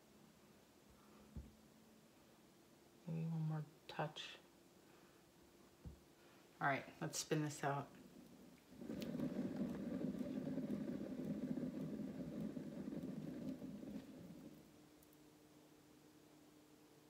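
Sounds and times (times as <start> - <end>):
turntable low rumbling whir: 7.6 - 15.0.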